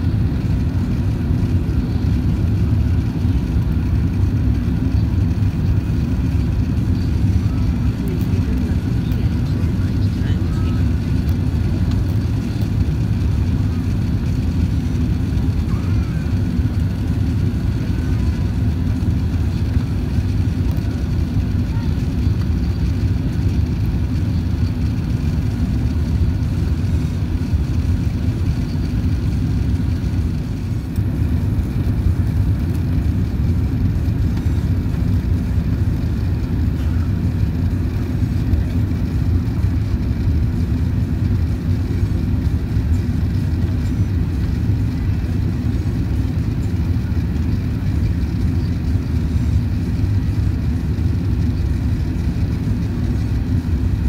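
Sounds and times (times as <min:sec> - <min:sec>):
airplane cabin rumble: 0:00.0 - 0:54.0.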